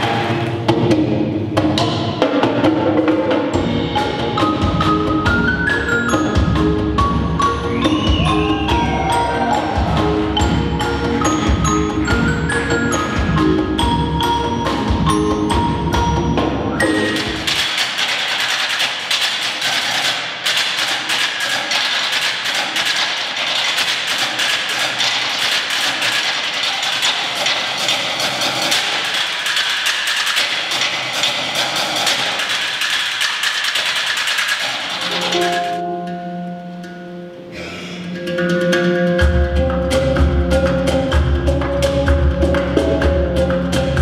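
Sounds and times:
drums: 0:00.0 - 0:35.8, 0:37.5 - 0:44.0
marimba melody: 0:03.5 - 0:17.9, 0:35.0 - 0:44.0
rapid high clicking: 0:17.0 - 0:35.8.

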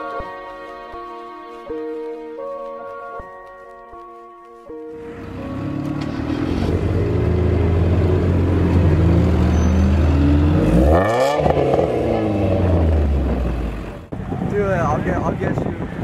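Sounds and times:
car engine idling and revving: 0:05.0 - 0:14.2.

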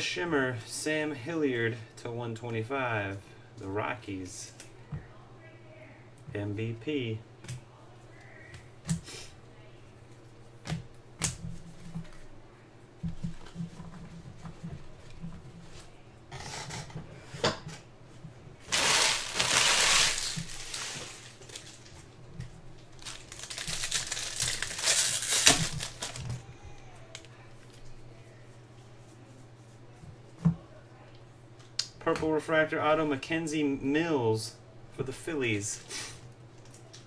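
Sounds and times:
foil wrappers crinkling: 0:18.6 - 0:26.5
card handling: 0:23.0 - 0:26.4.

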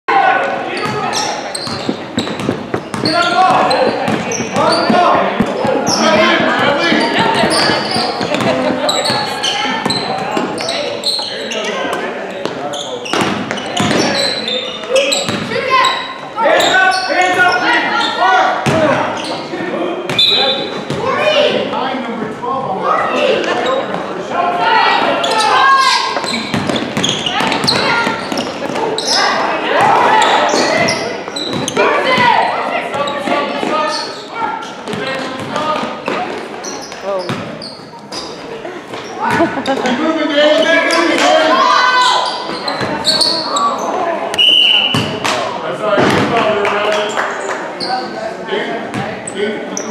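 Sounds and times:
basketball bouncing on hardwood: 0:01.7 - 0:10.0
people calling out: 0:36.8 - 0:45.2.

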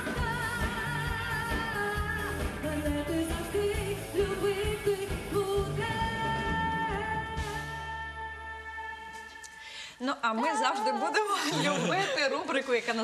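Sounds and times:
woman singing with vibrato: 0:00.0 - 0:11.8.

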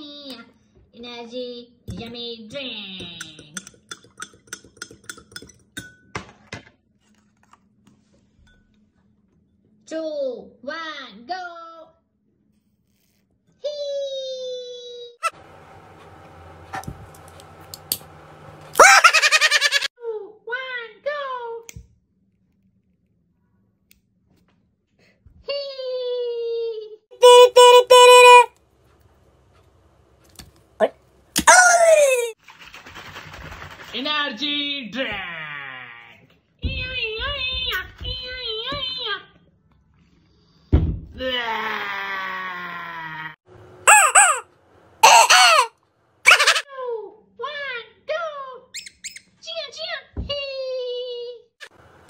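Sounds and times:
high-pitched vocal heee: 0:18.8 - 0:19.2, 0:27.2 - 0:28.5, 0:31.4 - 0:32.4, 0:43.9 - 0:44.4, 0:45.0 - 0:45.7, 0:46.3 - 0:46.6
drawn-out voice wail: 0:18.8 - 0:19.9, 0:27.2 - 0:28.5, 0:31.4 - 0:32.4, 0:43.9 - 0:44.4, 0:45.0 - 0:45.7, 0:46.3 - 0:46.6
rubber duck toy squeaking: 0:27.2 - 0:28.5, 0:43.9 - 0:44.4, 0:45.0 - 0:45.7, 0:46.3 - 0:46.6.

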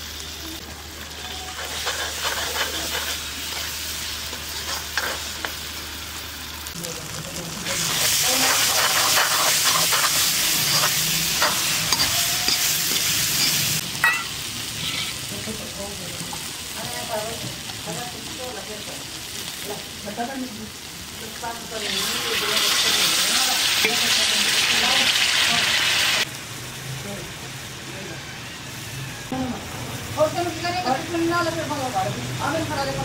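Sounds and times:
spice paste sizzling in a pan: 0:00.0 - 0:33.0
steel ladle scraping a pan: 0:01.2 - 0:05.5, 0:07.8 - 0:15.2.

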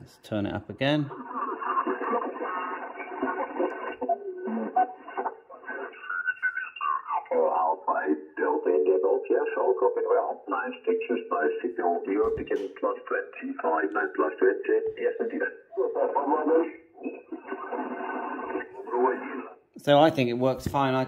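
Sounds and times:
radio whistling tones: 0:01.1 - 0:12.6, 0:13.2 - 0:19.6
thin radio voices: 0:01.1 - 0:19.6.

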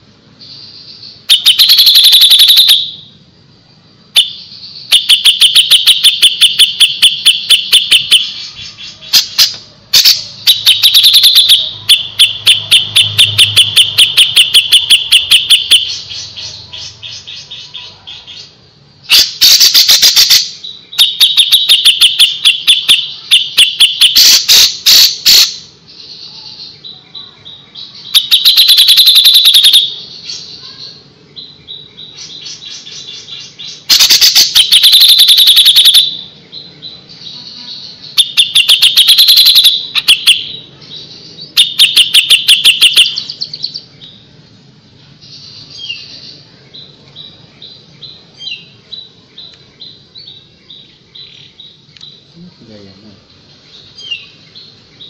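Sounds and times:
bulbul singing: 0:00.0 - 0:55.0.

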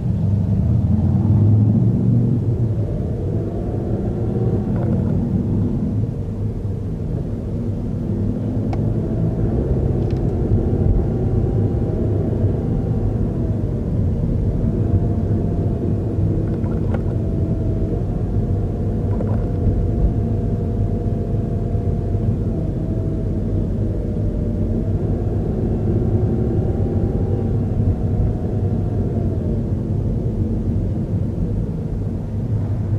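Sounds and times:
car interior road rumble: 0:00.0 - 0:32.9
faint whine: 0:00.0 - 0:32.9.

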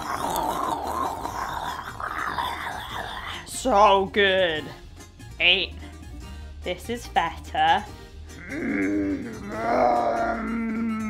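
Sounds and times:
rough throaty growl: 0:00.0 - 0:03.5, 0:08.3 - 0:11.0.

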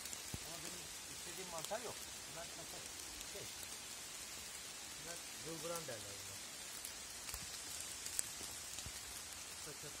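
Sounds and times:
steady high hiss: 0:00.0 - 0:10.0.

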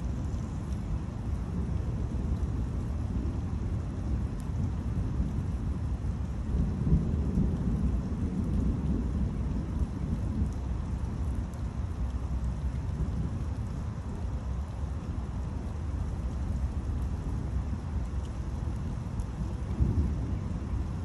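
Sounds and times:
rain hiss: 0:00.0 - 0:21.0
thunder rumbling: 0:06.4 - 0:11.5, 0:15.3 - 0:21.0.

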